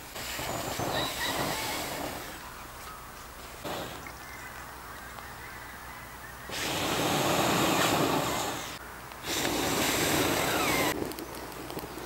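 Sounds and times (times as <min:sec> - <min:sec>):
person blowing onto embers: 0:00.0 - 0:02.4, 0:03.6 - 0:04.1, 0:06.5 - 0:12.0.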